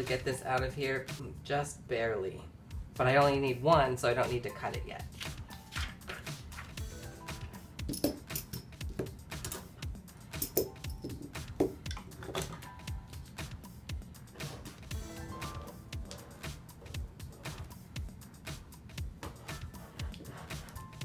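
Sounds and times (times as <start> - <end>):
background music: 0.0 - 1.5, 2.6 - 21.0
metal washers clinking: 7.8 - 8.8, 10.3 - 11.2.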